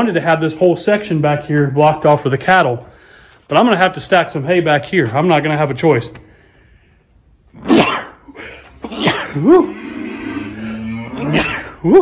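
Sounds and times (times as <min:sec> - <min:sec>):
man gasping: 0:02.9 - 0:03.5
man coughing: 0:07.6 - 0:09.8, 0:11.0 - 0:12.0.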